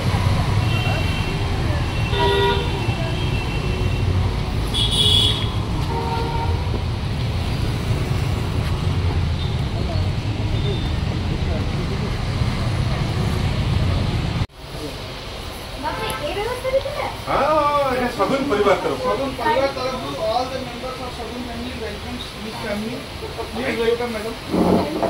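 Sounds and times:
low traffic rumble: 0:00.0 - 0:25.0
vehicle horns tooting: 0:00.6 - 0:06.8.

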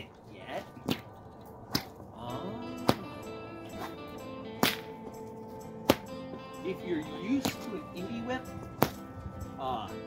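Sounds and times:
bullwhip cracking: 0:00.8 - 0:02.0, 0:02.8 - 0:04.0, 0:04.6 - 0:05.2, 0:05.8 - 0:06.2, 0:07.4 - 0:07.8, 0:08.8 - 0:09.1
background music: 0:01.5 - 0:10.0.

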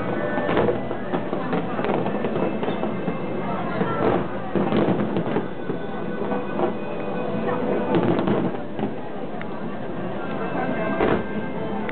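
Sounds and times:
fireworks popping: 0:00.0 - 0:11.9
voices: 0:00.0 - 0:11.9.

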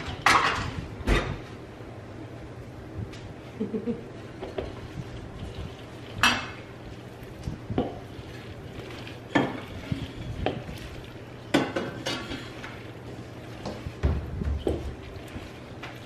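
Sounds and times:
wooden spoon scraping metal bowl: 0:04.6 - 0:16.0.

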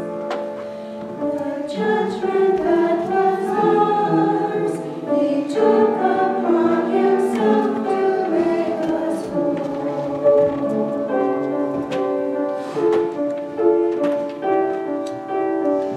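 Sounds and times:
choir singing: 0:01.2 - 0:12.0.

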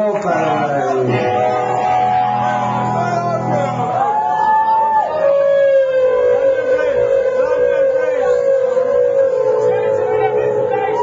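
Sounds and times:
electric guitar feedback whine: 0:00.6 - 0:11.0.

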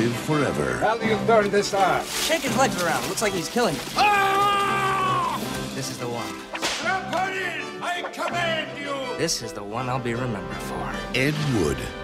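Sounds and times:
trailer music: 0:00.0 - 0:12.0
long held cry: 0:04.0 - 0:05.5
sudden sharp crack: 0:06.4 - 0:07.2.

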